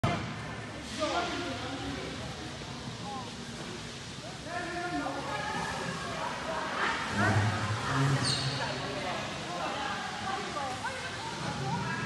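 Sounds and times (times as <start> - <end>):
faint echoing voices: 0.0 - 12.0
steady noisy background: 0.0 - 12.0.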